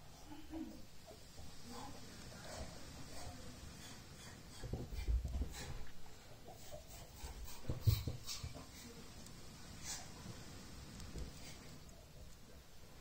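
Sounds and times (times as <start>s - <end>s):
small crackles: 0.9s - 13.0s.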